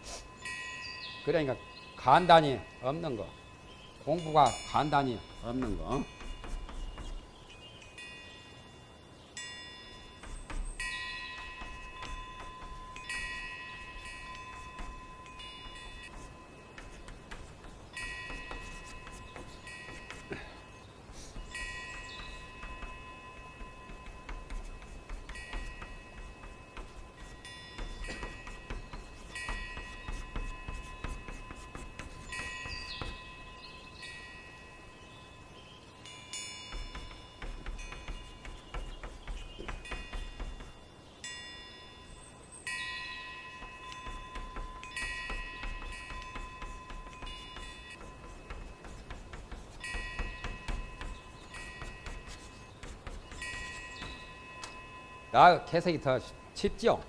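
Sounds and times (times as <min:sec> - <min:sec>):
chalk tapping on chalkboard: 0:04.4 - 0:07.4, 0:10.2 - 0:33.7, 0:36.7 - 0:40.9, 0:43.6 - 0:54.8
chalk squealing: 0:04.7 - 0:07.4, 0:10.2 - 0:33.7, 0:36.7 - 0:40.8, 0:43.6 - 0:54.8.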